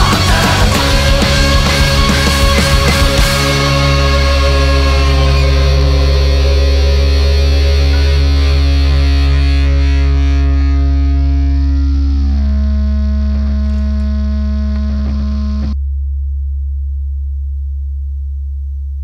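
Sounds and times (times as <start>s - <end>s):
distorted electric guitar chord ringing: 0.0s - 15.8s
low hum: 0.0s - 19.0s.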